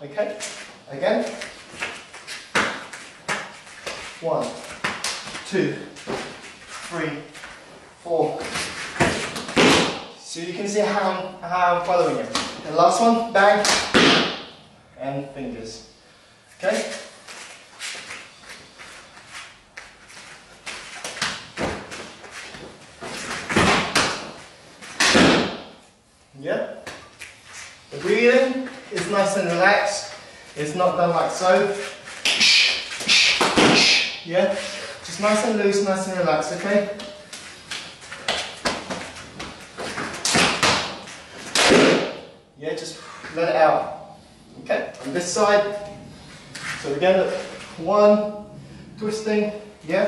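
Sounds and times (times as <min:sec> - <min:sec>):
bare footwork on a mat: 0:00.2 - 0:10.2, 0:11.8 - 0:14.6, 0:16.5 - 0:25.9, 0:26.8 - 0:42.4
hand slaps and body thuds: 0:01.3 - 0:06.4, 0:08.4 - 0:10.1, 0:13.6 - 0:14.6, 0:20.6 - 0:25.8, 0:32.1 - 0:34.2, 0:37.0 - 0:42.3
sharp slaps and dull thuds: 0:09.0 - 0:10.1, 0:13.6 - 0:14.6, 0:25.0 - 0:25.8, 0:32.2 - 0:34.2, 0:37.3 - 0:42.3.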